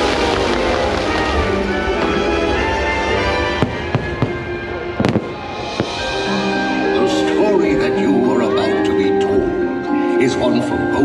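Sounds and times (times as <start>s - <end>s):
fireworks bangs: 0.0s - 6.8s
music playing: 0.0s - 11.0s.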